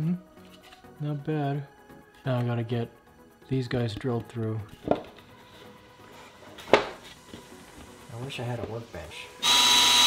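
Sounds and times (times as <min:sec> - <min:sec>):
wooden drawer knocking on floor: 0:04.8 - 0:05.2.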